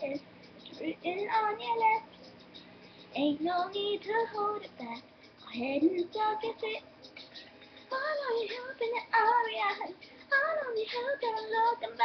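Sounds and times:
girl singing: 0.0 - 2.1, 3.1 - 12.0.

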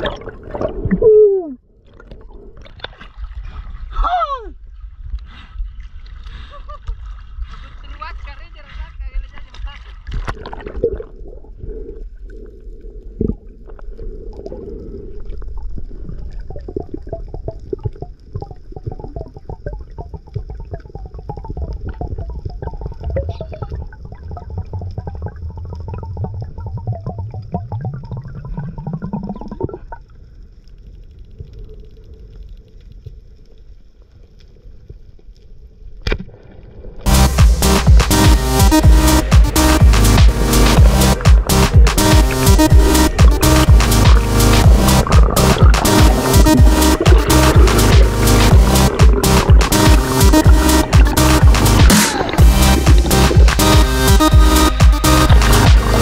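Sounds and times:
water splashing: 0.0 - 4.0, 4.7 - 30.2, 36.0 - 56.0
muffled underwater noise: 20.7 - 26.0
crackling clicks: 29.3 - 38.7
low hum rising in pitch: 37.1 - 56.0.

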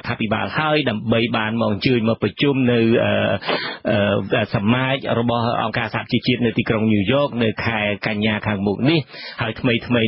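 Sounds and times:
man reading news: 0.0 - 10.0.

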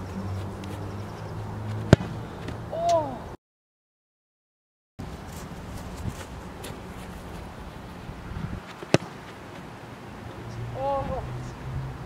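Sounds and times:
low outdoor background: 0.0 - 3.4, 5.0 - 12.0
boot kicking football: 1.8 - 3.0, 8.6 - 9.7.

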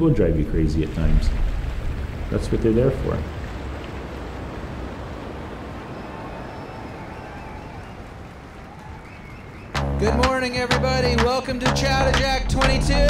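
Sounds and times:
small waves washing on shore: 0.8 - 9.7
hip-hop music with heavy bass: 9.8 - 13.0.

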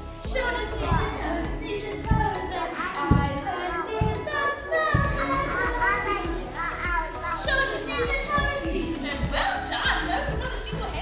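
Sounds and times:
children's song with music: 0.0 - 11.0
toddlers chattering: 0.3 - 11.0.

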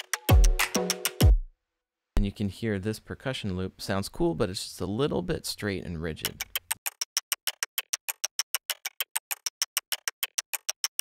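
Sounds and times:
clicking percussion loop: 0.0 - 1.4, 6.2 - 11.0.

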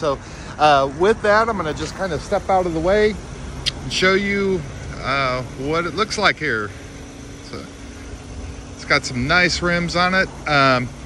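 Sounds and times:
man speaking: 0.0 - 7.8, 8.8 - 11.0
steady low hum: 0.0 - 11.0.

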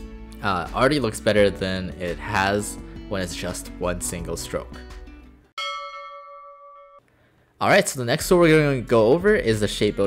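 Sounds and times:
background music: 0.0 - 5.5, 7.6 - 10.0
bell-like chime: 5.6 - 7.0.

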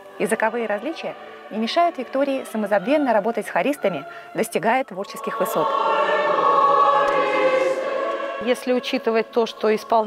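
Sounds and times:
mixed choir singing held chord: 0.0 - 10.0.

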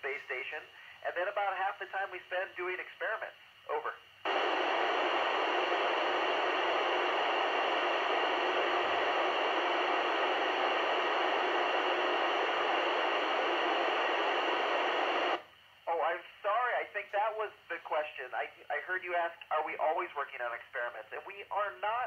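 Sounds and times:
radio scanner static hiss: 0.0 - 22.0.

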